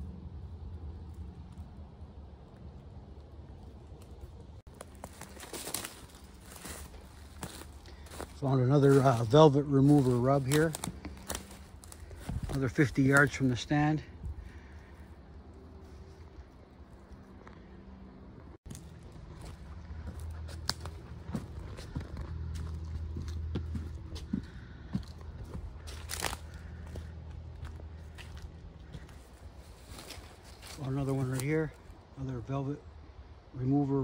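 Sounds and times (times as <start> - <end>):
low steady hum: 0.0 - 34.0
footsteps through dry leaves: 4.6 - 15.0, 18.6 - 32.0.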